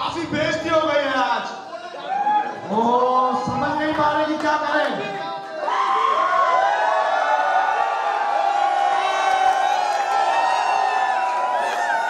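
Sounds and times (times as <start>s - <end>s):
crowd cheering and shouting: 1.7s - 3.6s, 5.0s - 12.0s.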